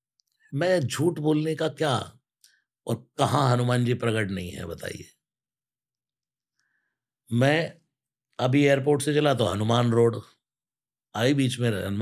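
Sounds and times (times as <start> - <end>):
man speaking: 0.5 - 2.2, 2.9 - 5.2, 7.3 - 7.8, 8.4 - 10.4, 11.2 - 12.0.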